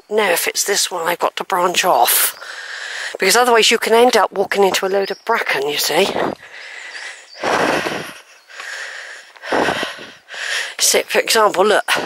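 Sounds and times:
quiet breathing: 0:02.3 - 0:03.2, 0:06.2 - 0:10.9
breathy exhale: 0:06.4 - 0:10.8.

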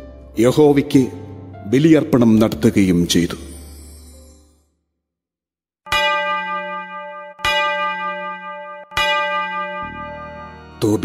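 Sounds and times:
bell ringing: 0:05.9 - 0:11.0.

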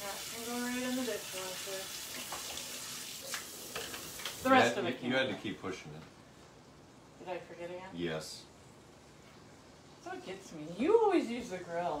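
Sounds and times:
burgers sizzling on a grill: 0:00.0 - 0:04.8.

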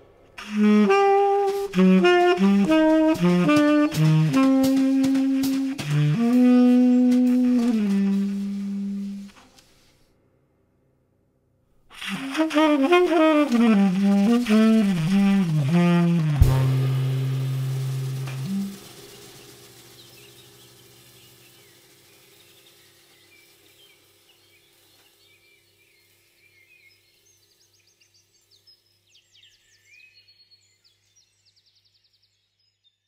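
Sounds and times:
low saxophone note: 0:00.1 - 0:09.6, 0:12.0 - 0:19.9
cymbal and drum hit: 0:14.5 - 0:22.4.

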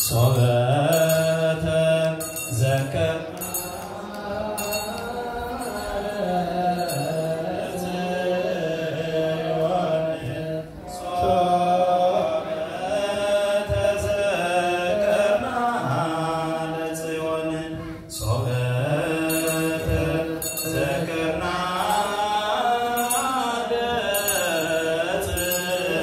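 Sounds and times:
group chanting on long notes: 0:00.0 - 0:26.0.

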